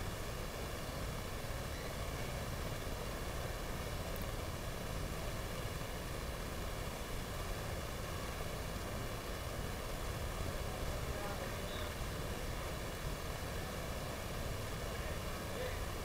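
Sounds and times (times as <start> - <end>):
noisy background ambience: 0.0 - 16.0.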